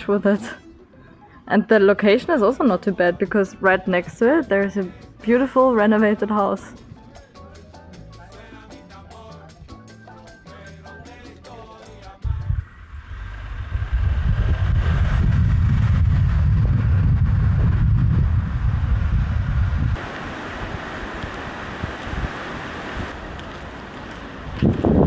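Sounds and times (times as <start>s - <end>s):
hissing wind noise: 12.2s - 25.0s
wind rumble on microphone: 12.2s - 25.0s.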